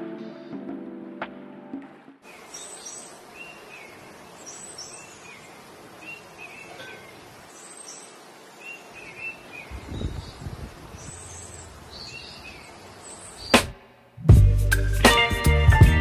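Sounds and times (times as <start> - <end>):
birds chirping: 2.2 - 14.0
steady outdoor noise: 2.2 - 14.3.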